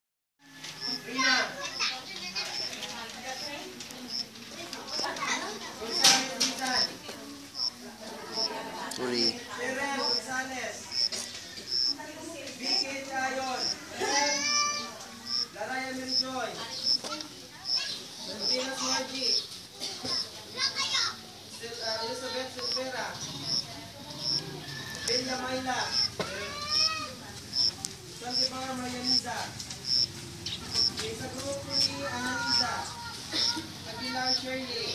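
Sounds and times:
voices talking: 0.5s - 34.9s.

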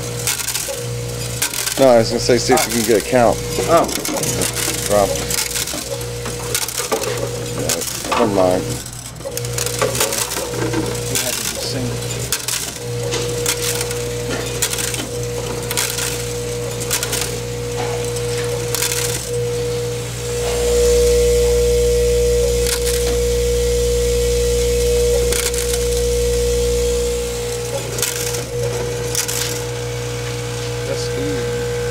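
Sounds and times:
vibratory feeder humming: 0.0s - 31.9s
small parts clicking and rattling: 0.1s - 19.6s, 22.6s - 23.2s, 25.3s - 26.0s, 27.1s - 29.7s.

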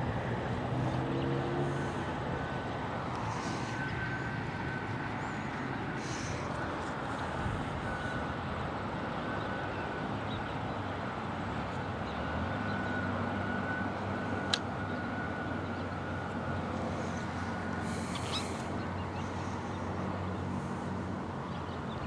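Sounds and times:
low engine-like hum: 0.0s - 22.0s.

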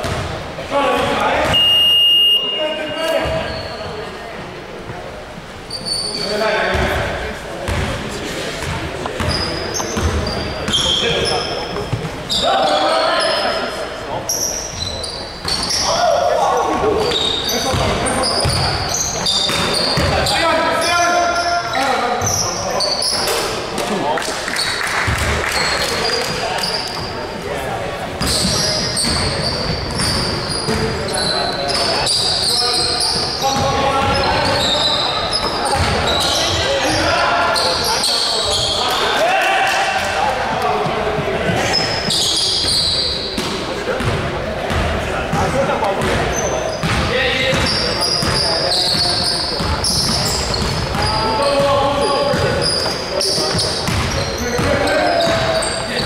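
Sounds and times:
basketball bouncing on wooden floor: 0.0s - 0.3s, 49.0s - 51.1s
shoes squeaking on court: 2.5s - 4.1s, 4.8s - 27.4s, 28.1s - 39.2s, 40.5s - 56.0s
players calling out: 5.6s - 56.0s.

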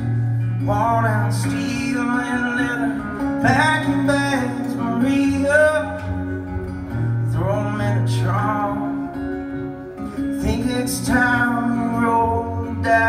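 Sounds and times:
country music on guitars: 0.0s - 13.0s.

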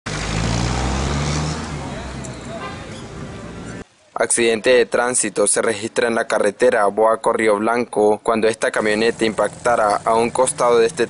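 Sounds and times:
street noise: 0.1s - 11.0s
vehicle engine running: 8.8s - 11.0s.

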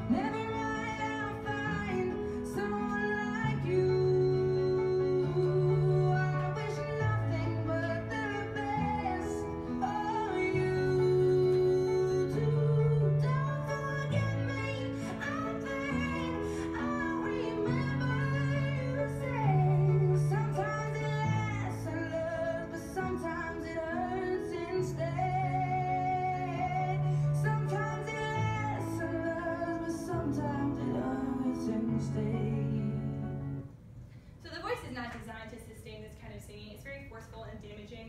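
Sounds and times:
woman singing a ballad: 0.0s - 33.6s.

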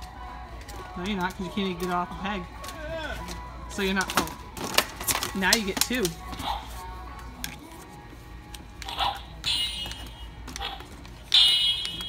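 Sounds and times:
plastic packaging rustling: 4.0s - 8.0s.

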